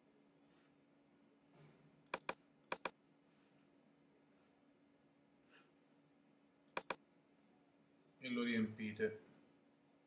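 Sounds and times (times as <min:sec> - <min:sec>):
faint steady hum: 0:00.0 - 0:10.0
computer mouse clicks: 0:02.0 - 0:03.0, 0:06.6 - 0:07.0.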